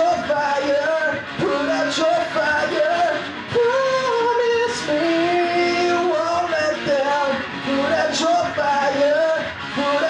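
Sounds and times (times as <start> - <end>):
electric guitar held notes: 0.0 - 10.0.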